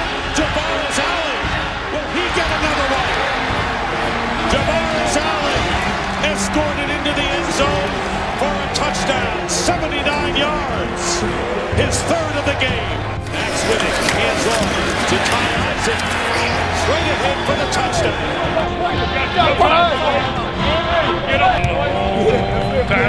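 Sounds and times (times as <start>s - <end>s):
music playing: 0.0s - 23.0s
stadium crowd cheering and shouting: 0.0s - 23.0s.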